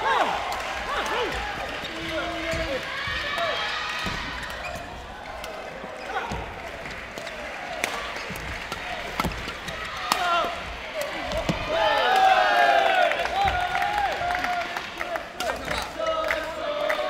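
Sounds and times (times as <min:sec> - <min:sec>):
voices shouting and calling out: 0:00.0 - 0:06.7.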